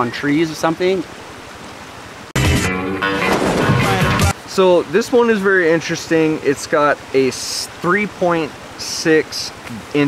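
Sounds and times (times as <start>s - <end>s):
creek running over rocks: 0.0s - 2.4s, 3.2s - 10.0s
loud music: 2.4s - 4.4s.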